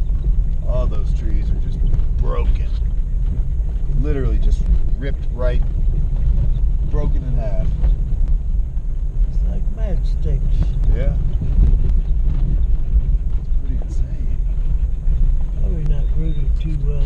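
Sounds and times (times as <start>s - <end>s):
car cabin engine rumble: 0.0s - 17.0s.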